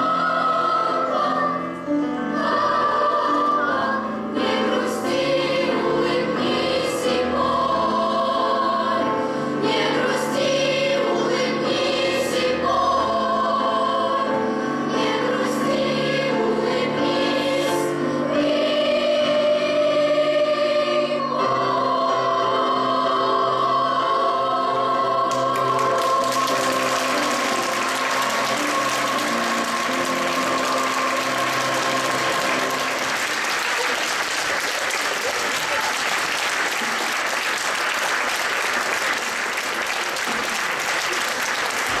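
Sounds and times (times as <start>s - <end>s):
girls' choir singing with piano: 0.0s - 42.0s
audience applause: 25.3s - 42.0s.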